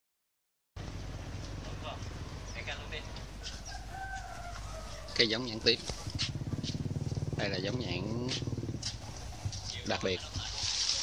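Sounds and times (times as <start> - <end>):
rooster crowing: 3.4 - 5.8.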